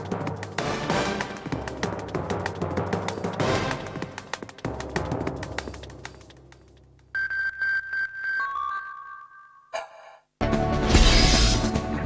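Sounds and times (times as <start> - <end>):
synthesized electronic beeps: 7.2 - 10.0.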